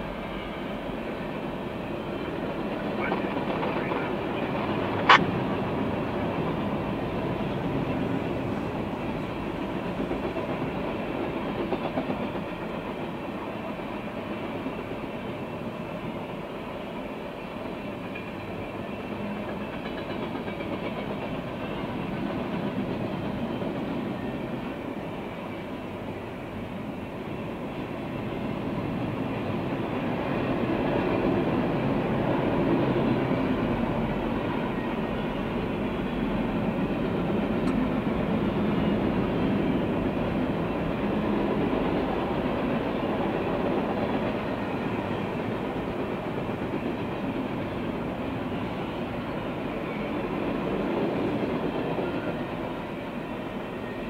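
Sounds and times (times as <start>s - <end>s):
freight train wheels rumbling: 0.0s - 54.0s.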